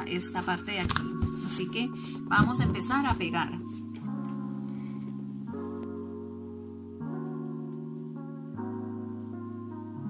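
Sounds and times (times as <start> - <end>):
background music with held chords: 0.0 - 10.0.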